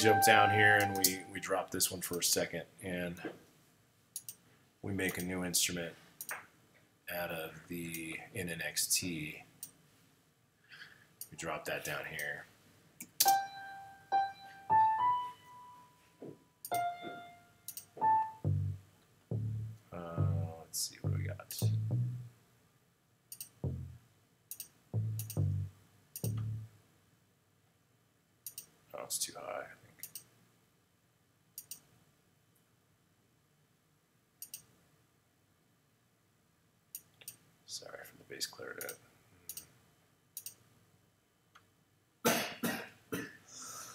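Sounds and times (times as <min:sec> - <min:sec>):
sampled grand piano notes: 0:00.0 - 0:01.4, 0:13.2 - 0:16.0, 0:16.7 - 0:18.8
computer mouse clicking: 0:04.2 - 0:04.4, 0:23.3 - 0:23.6, 0:24.5 - 0:25.4, 0:28.5 - 0:28.7, 0:31.6 - 0:31.9, 0:34.4 - 0:34.7, 0:38.8 - 0:39.7, 0:40.4 - 0:40.6
deep plucked bass notes: 0:18.0 - 0:22.3, 0:23.6 - 0:24.0, 0:25.0 - 0:26.7.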